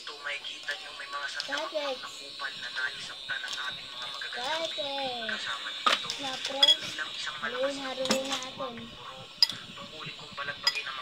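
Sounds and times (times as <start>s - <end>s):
metal spoon clinking on ceramic bowl: 6.6s - 6.8s.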